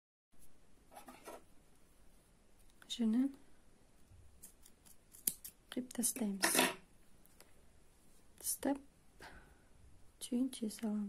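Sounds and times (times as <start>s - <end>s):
scissors snipping yarn: 4.4s - 5.6s.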